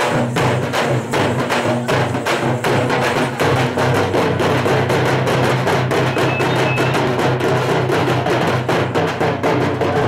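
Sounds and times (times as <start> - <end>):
frame drums beaten by hand: 0.0 - 10.0.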